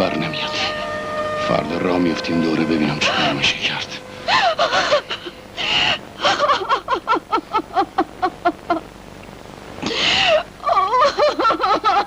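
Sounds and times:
woman crying: 4.2s - 8.9s, 9.8s - 12.0s.

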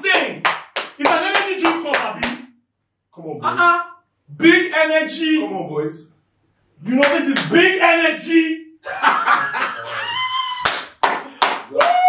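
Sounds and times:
man's voice: 0.0s - 0.4s, 1.0s - 2.4s, 3.2s - 6.0s, 6.8s - 10.2s
hands clapping fast: 0.0s - 2.5s, 6.9s - 7.6s, 10.6s - 12.0s.

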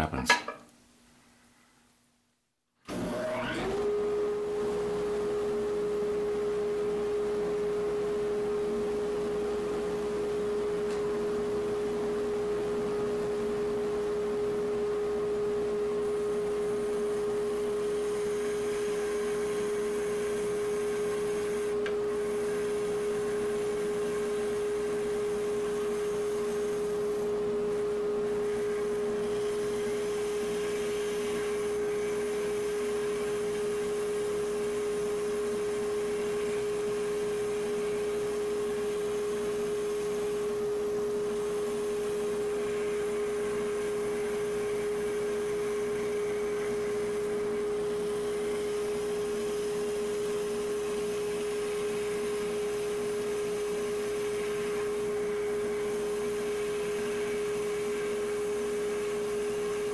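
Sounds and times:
spindle sander humming: 17.6s - 59.9s.

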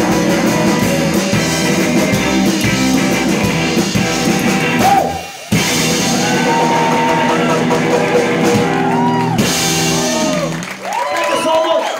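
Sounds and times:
upright bass: 0.0s - 10.7s
drum kit: 0.0s - 11.1s
electric guitar: 0.0s - 11.1s.

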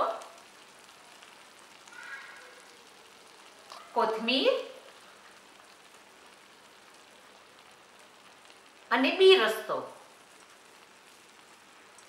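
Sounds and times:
gravy sizzling and bubbling in pan: 0.0s - 12.0s.

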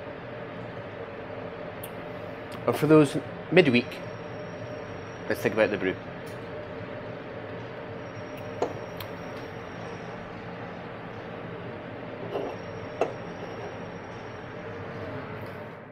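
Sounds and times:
faint high whine: 0.0s - 15.9s.

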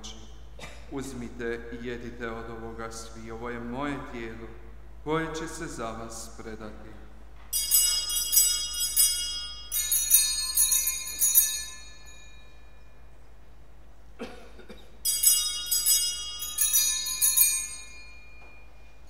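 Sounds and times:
altar bells jangling: 7.4s - 13.3s, 15.0s - 19.0s.

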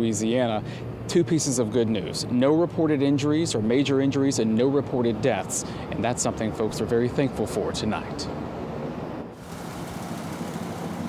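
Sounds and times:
outdoor background hiss: 0.0s - 11.0s
engine running: 8.3s - 11.0s.

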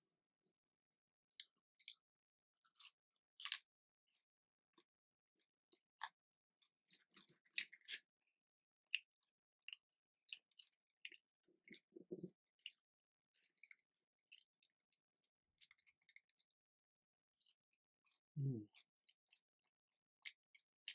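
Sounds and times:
chewing and crunching food: 1.3s - 20.9s.

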